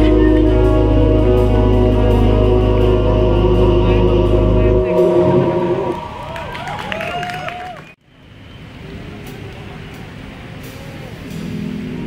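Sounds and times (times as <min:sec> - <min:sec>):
live band playing: 0:00.0 - 0:06.2
sustained chord: 0:00.0 - 0:06.4.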